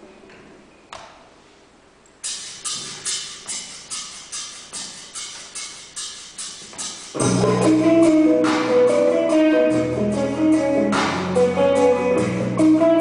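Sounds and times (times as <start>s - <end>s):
sharp percussive clicks: 2.2s - 7.5s.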